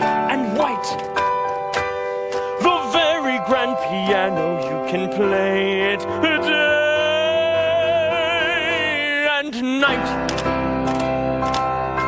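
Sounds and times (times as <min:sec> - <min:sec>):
man singing operatic note: 0:02.6 - 0:10.1.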